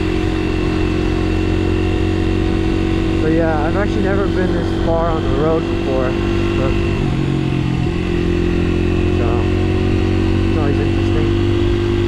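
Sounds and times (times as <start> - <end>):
motorbike engine running: 0.0 - 12.0.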